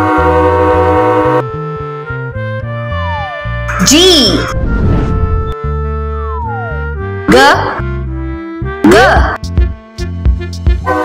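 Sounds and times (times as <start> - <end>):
held horn-like chord: 0.0 - 8.6
bass line of short notes: 2.7 - 9.4.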